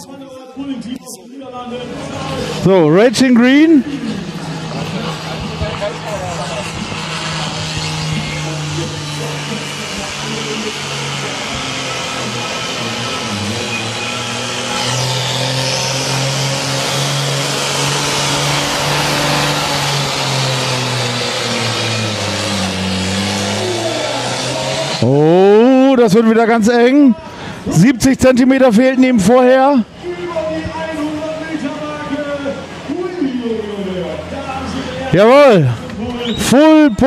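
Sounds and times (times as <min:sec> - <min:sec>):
tractor diesel engine under load: 0:01.7 - 0:37.0.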